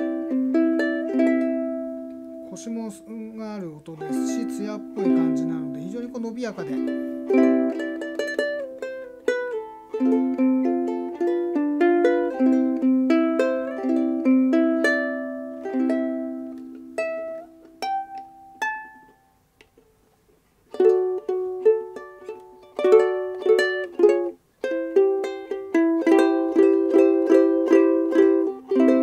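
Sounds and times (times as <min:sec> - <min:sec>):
ukulele plucked melody and chords: 0:00.0 - 0:19.9, 0:20.6 - 0:29.0.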